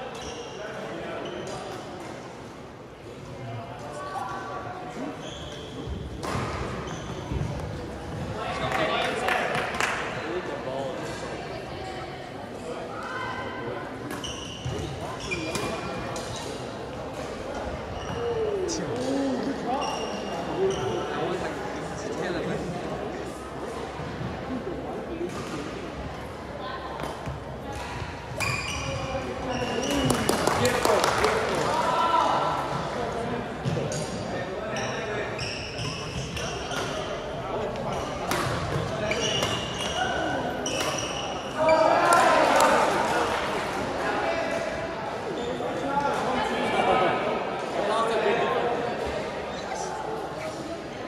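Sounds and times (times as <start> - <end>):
background chatter in gym: 0.0 - 51.0
indistinct echoing voices: 15.9 - 28.3.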